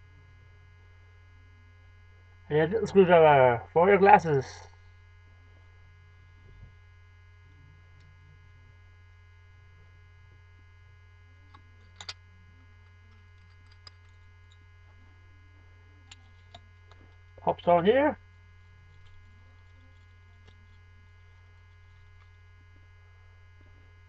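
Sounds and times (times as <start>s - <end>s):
electrical mains hum: 0.0s - 24.0s
small objects clicking: 11.5s - 12.2s, 13.1s - 14.6s.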